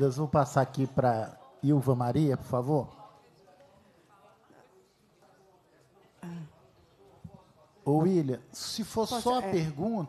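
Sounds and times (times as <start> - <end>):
faint voices speaking: 0.1 - 10.0.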